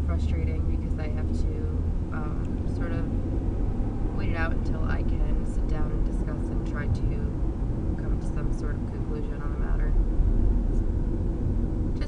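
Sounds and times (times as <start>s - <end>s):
car engine rumble: 0.0s - 12.0s
road noise inside car: 0.0s - 12.0s.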